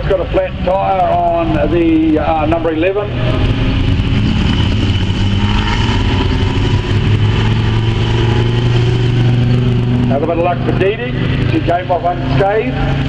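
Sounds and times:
car engine passing by: 0.0s - 13.0s
race car engines running: 0.0s - 13.0s.

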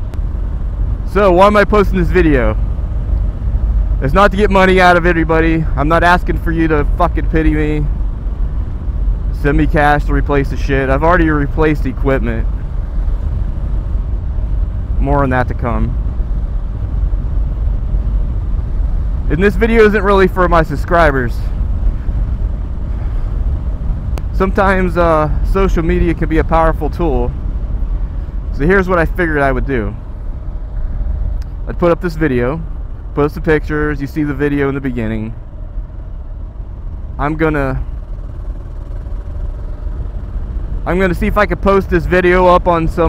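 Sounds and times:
motorcycle engine: 0.0s - 43.0s
road noise: 0.0s - 43.0s.

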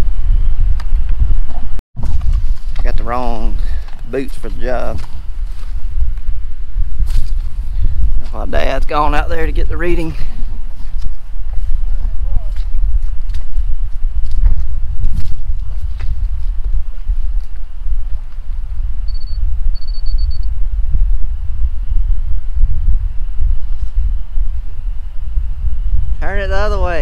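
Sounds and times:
wind buffeting microphone: 0.0s - 27.0s
short high electronic beep: 19.1s - 20.5s.

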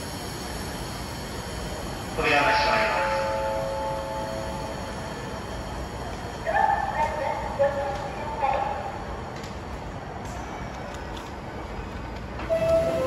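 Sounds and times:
station background noise: 0.0s - 13.0s.

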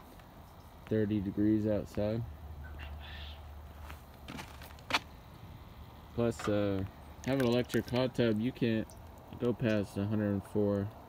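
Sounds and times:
soft footsteps: 3.7s - 5.2s.

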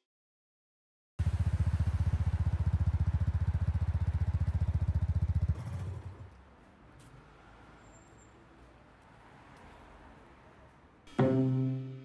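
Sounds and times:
motorcycle engine idling: 1.2s - 6.4s.

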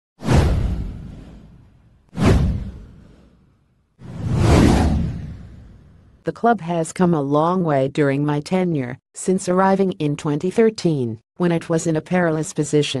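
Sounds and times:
whoosh sound effects: 4.0s - 6.1s.

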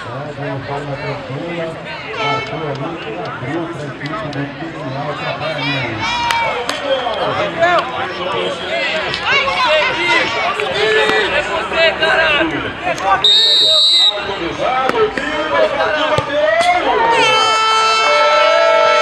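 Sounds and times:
people chattering and calling out: 0.0s - 19.0s
shrill referee's whistle blast: 13.2s - 14.3s.

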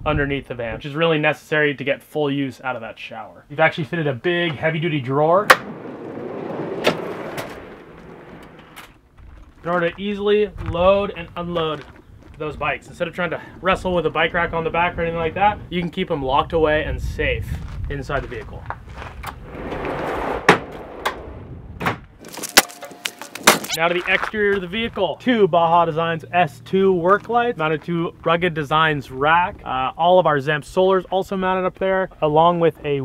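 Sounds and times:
drawer rolling on runners: 5.5s - 9.0s.

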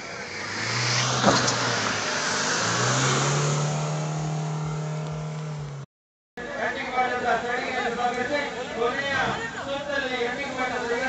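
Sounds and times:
jeep engine revving: 0.0s - 5.9s.

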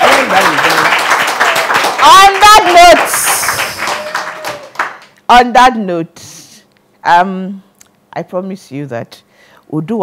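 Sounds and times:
audience clapping: 0.0s - 5.2s.

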